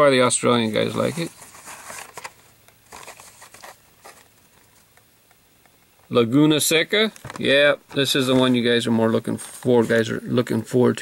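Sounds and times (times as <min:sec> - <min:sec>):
plastic packaging crinkling: 0:00.7 - 0:05.0.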